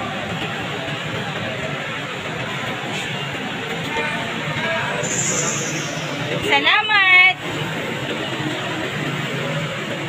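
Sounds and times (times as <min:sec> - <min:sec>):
steady noisy background: 0:00.0 - 0:10.0.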